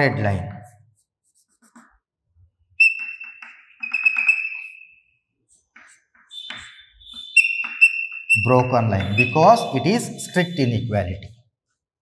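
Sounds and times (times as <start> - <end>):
chalk squeaking: 1.0 - 2.0, 2.8 - 10.5
chalk tapping on blackboard: 1.3 - 2.0, 5.5 - 9.4.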